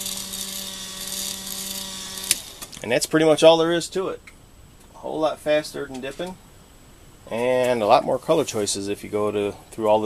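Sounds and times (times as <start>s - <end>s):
electric motor humming: 0.0s - 2.8s.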